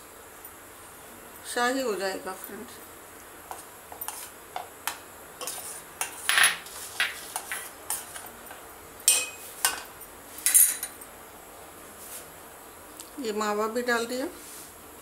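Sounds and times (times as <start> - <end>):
metal spoon scraping pot: 3.9 - 4.3, 5.4 - 8.3.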